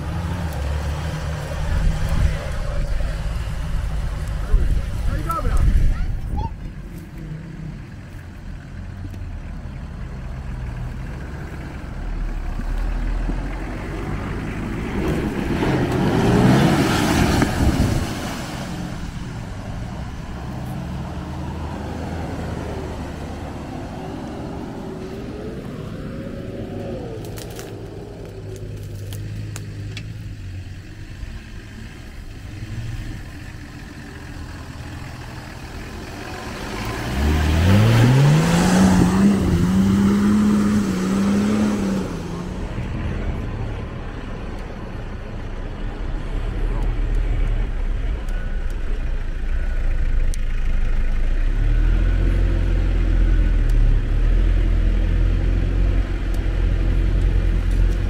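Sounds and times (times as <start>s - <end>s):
car engine revving: 6.9s - 58.0s.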